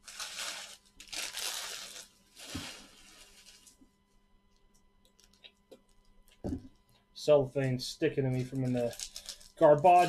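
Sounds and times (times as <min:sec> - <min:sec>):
cellophane crinkling: 0:00.0 - 0:03.9, 0:04.5 - 0:06.4, 0:08.3 - 0:10.0.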